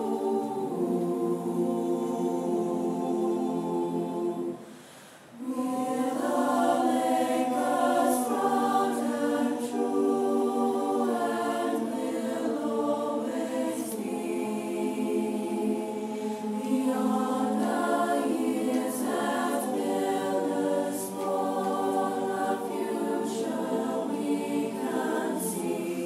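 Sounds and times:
choir singing long chords: 0:00.0 - 0:26.0.

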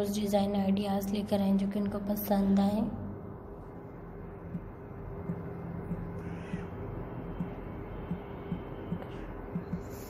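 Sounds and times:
low background hum: 0:00.0 - 0:10.0
soft low thumps: 0:04.4 - 0:06.7.

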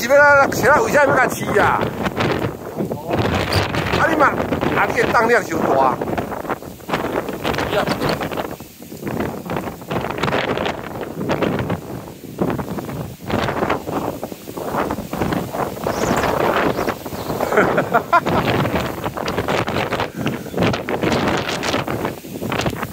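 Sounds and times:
wind buffeting microphone: 0:00.0 - 0:22.9.

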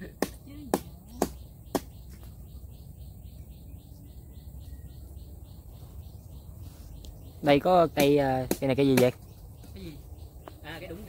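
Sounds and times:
high chirping call: 0:00.5 - 0:11.0.

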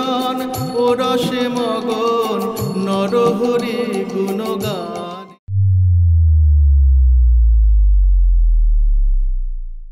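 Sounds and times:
deep synthesized falling tone: 0:05.5 - 0:09.9.

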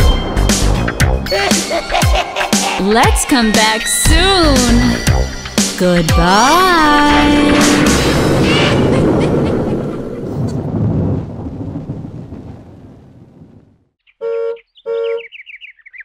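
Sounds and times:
loud noisy wash: 0:06.8 - 0:10.7
birds twittering: 0:14.0 - 0:16.0
cartoon car horn honking: 0:14.2 - 0:15.3.

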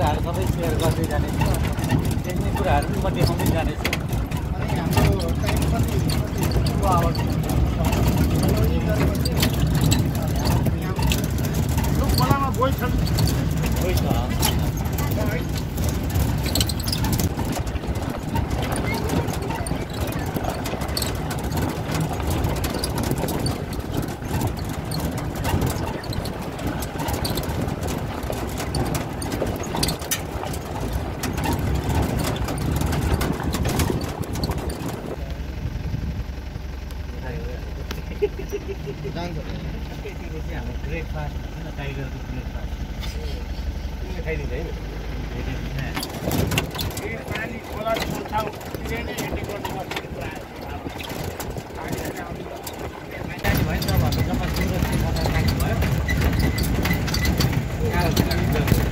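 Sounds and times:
jeep engine: 0:00.0 - 0:58.9
rattling: 0:00.0 - 0:58.9.

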